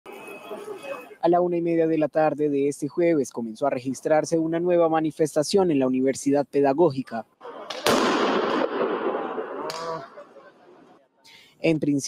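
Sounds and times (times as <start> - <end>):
loud explosion echoing: 7.5 - 10.5.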